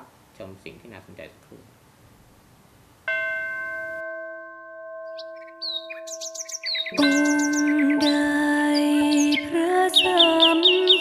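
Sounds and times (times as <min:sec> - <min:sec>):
bell-like chime ringing: 0:03.1 - 0:08.3
birdsong chirps: 0:05.0 - 0:11.0
soft music: 0:06.3 - 0:11.0.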